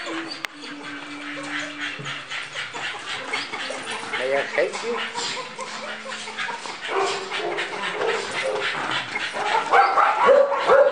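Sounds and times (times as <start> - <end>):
dog barking and yipping: 0.0 - 10.9.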